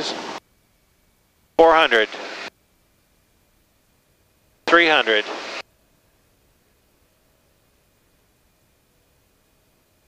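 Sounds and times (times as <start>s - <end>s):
spoken callout over intercom: 1.6s - 2.2s, 4.7s - 5.4s.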